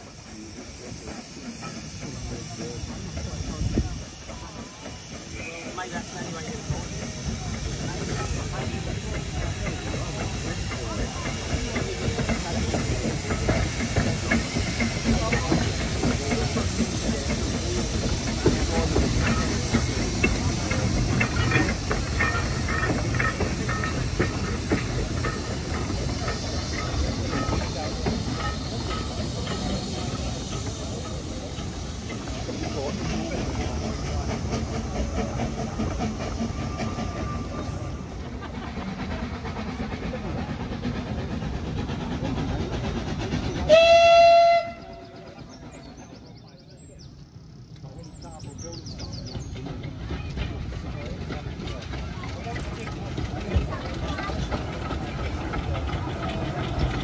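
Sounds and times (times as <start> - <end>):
wheels clicking over rail joints: 0.0 - 46.2, 47.7 - 57.0
steam train rolling past: 0.0 - 57.0
steam whistle blowing: 43.7 - 45.2.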